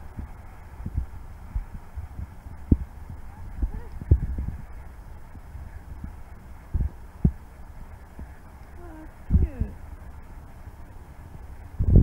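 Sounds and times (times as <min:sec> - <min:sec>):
low microphone rumble: 0:00.0 - 0:12.0.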